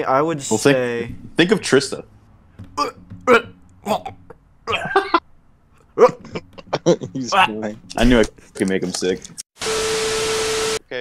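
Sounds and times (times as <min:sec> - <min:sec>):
man gagging: 0:02.8 - 0:05.2, 0:05.9 - 0:07.5
man laughing: 0:04.7 - 0:05.2, 0:05.9 - 0:07.7.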